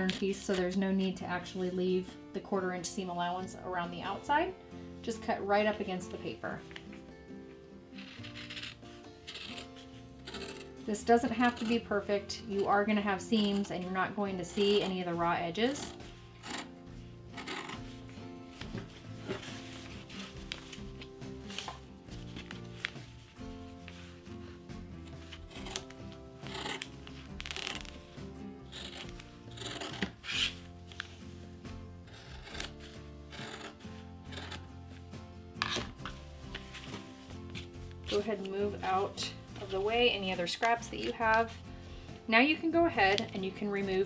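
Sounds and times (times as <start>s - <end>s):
background music: 0.0s - 44.0s
scissors snipping fabric: 8.0s - 13.8s, 14.5s - 16.7s, 17.4s - 17.9s, 25.3s - 28.0s, 28.6s - 31.1s, 32.1s - 34.7s.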